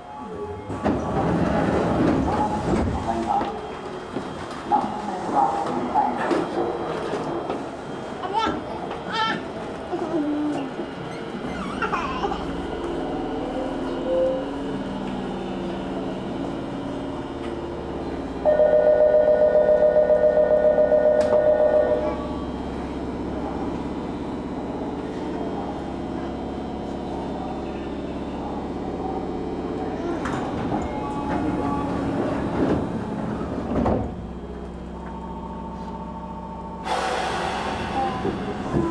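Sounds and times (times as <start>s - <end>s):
train humming: 0.0s - 38.9s.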